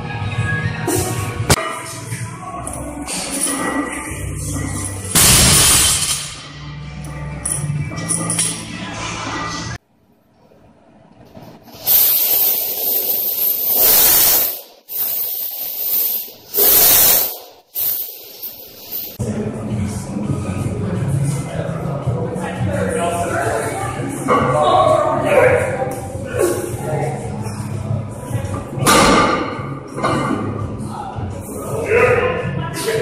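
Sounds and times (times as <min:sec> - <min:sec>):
background music: 0:00.0 - 0:09.8.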